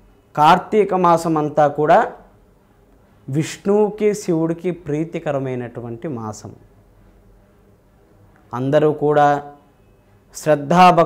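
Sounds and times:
man speaking into a microphone: 0:00.3 - 0:02.2, 0:03.3 - 0:06.6, 0:08.5 - 0:09.6, 0:10.3 - 0:11.0.

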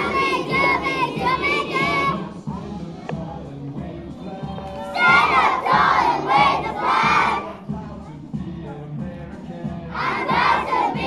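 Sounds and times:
children shouting together: 0:04.8 - 0:07.6.

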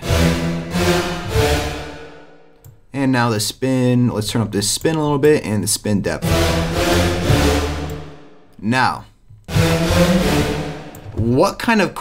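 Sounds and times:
detuned synth bass chords: 0:00.0 - 0:02.5, 0:06.1 - 0:08.4, 0:09.4 - 0:11.3.

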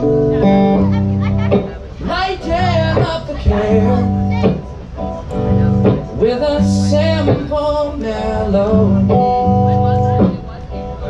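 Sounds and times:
guitar strumming through pa: 0:00.0 - 0:11.0.

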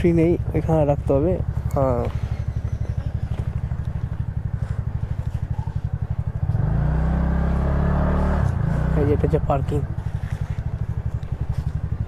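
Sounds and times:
scooter engine running: 0:00.0 - 0:12.0.

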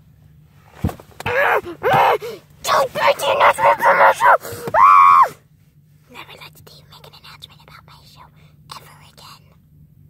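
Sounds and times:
faint whispering voice: 0:06.1 - 0:09.6.

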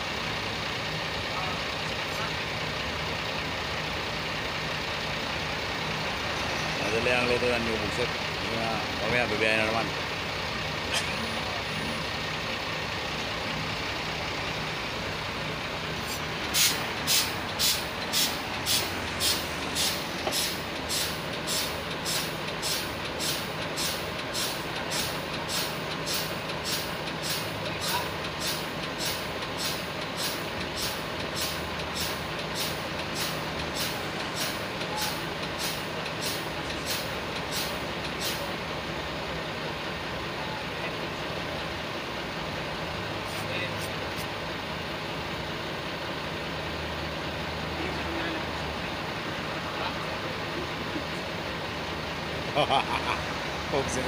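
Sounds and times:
vehicle engine noise: 0:00.0 - 0:54.0
sharp hissy clicks: 0:16.1 - 0:27.6, 0:28.2 - 0:38.5.

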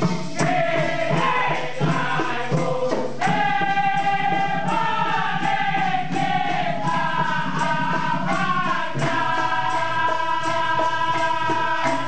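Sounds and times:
men singing chorus: 0:00.0 - 0:12.0
percussion beat: 0:00.0 - 0:12.0.

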